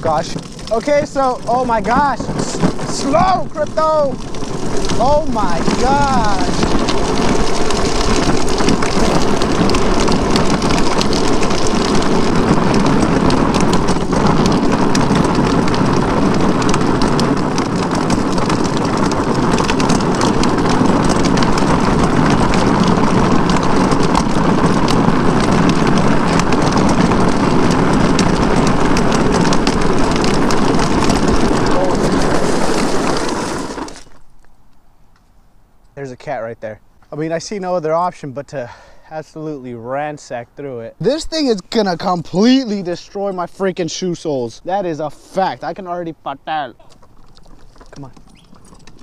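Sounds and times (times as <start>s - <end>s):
wind noise on microphone: 0.0s - 34.2s
trike rolling on rough asphalt: 0.0s - 49.0s.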